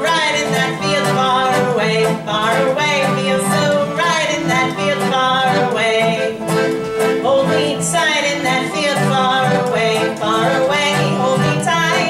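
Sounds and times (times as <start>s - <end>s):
accordion chords: 0.0s - 12.0s
strummed guitar: 0.0s - 12.0s.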